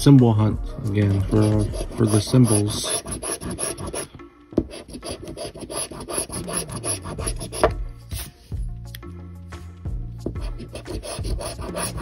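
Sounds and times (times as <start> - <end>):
coin scratching lottery ticket: 1.3 - 4.0, 4.7 - 7.7, 10.7 - 12.0.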